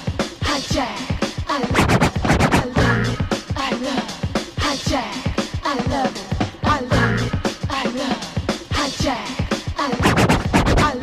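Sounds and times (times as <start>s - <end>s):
funk dj mix: 0.0s - 11.0s
turntable scratching: 0.2s - 3.8s, 9.1s - 11.0s.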